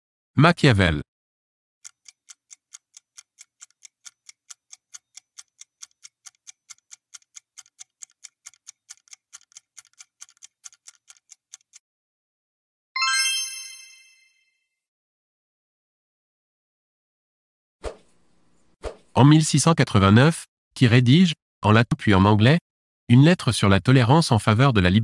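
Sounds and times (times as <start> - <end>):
fast clock ticking: 1.8 - 11.8
bright chime: 13.0 - 14.6.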